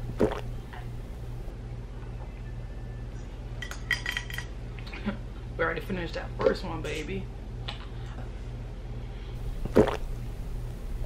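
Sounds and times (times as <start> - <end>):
steady low hum: 0.0 - 3.7, 4.3 - 11.0.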